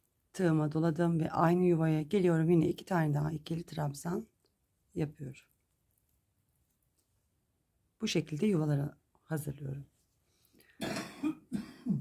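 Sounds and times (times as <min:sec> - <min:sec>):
woman clearing throat: 0:10.8 - 0:12.0
woman coughing: 0:10.8 - 0:12.0.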